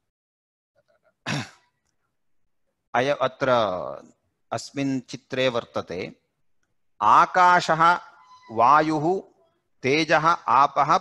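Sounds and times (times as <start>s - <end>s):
man clearing throat: 1.2s - 1.8s.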